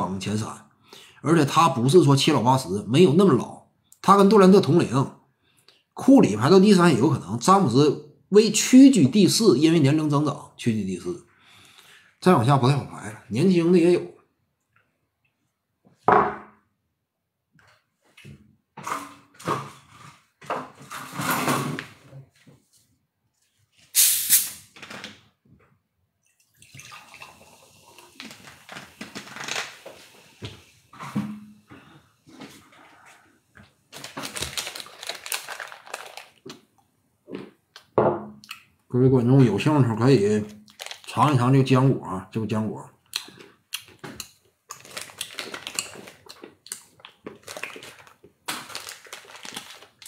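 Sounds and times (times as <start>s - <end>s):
plastic pouch crinkling: 28.2s - 29.9s, 33.9s - 36.6s, 40.6s - 41.4s, 44.7s - 50.0s.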